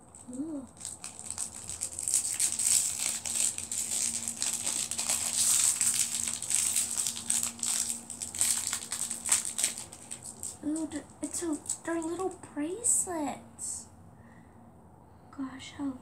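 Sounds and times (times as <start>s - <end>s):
plastic wrapper crackling: 0.0s - 12.4s.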